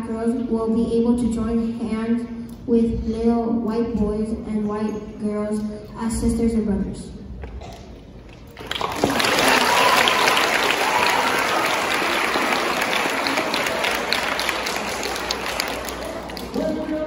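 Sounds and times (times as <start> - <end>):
audience applauding: 8.5 - 17.0.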